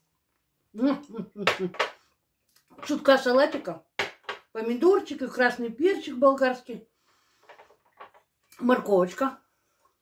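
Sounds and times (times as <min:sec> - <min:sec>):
woman speaking: 0:02.8 - 0:03.9, 0:04.5 - 0:06.8, 0:08.6 - 0:09.4.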